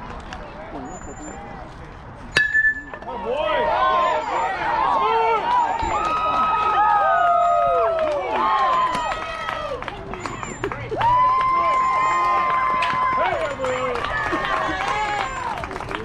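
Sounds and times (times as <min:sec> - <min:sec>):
metal bat hitting ball: 0:02.4 - 0:03.1
crowd shouting and cheering: 0:02.4 - 0:16.0.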